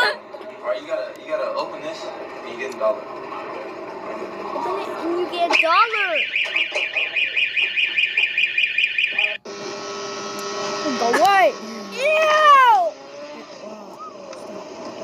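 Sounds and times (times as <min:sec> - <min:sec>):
fire alarm pulsing: 0:05.5 - 0:11.6
outboard motor humming: 0:09.4 - 0:15.0
women calling out loudly: 0:11.0 - 0:13.0.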